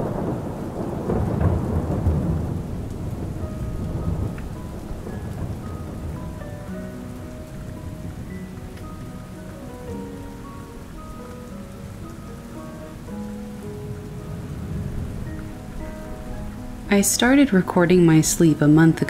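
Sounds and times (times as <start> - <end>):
heavy rain: 0.0 - 19.0
rolling thunder rumble: 0.0 - 19.0
soft background music notes: 0.2 - 19.0.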